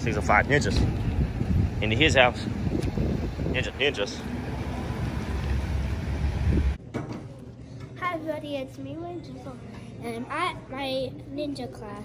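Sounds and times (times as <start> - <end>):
wind buffeting microphone: 0.0 - 5.0, 5.8 - 6.8.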